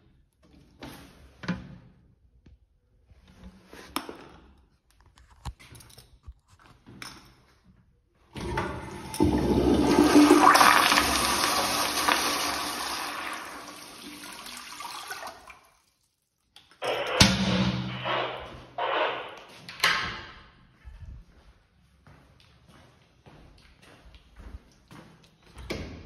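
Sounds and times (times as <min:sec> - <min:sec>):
toilet flushing: 0:08.4 - 0:15.8.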